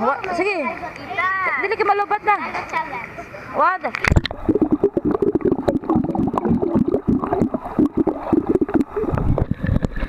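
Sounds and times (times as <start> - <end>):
underwater churning and bubbling: 4.0 - 10.0.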